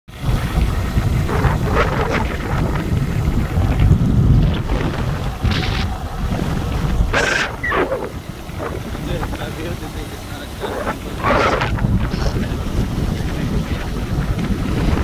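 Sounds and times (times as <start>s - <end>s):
wind buffeting microphone: 0.1s - 15.0s.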